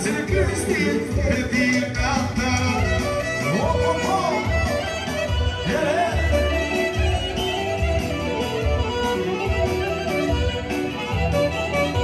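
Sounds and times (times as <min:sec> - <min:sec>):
electronic keyboard melody: 0:00.0 - 0:12.0
pulsing bass beat: 0:00.0 - 0:12.0
clarinet melody: 0:02.9 - 0:12.0.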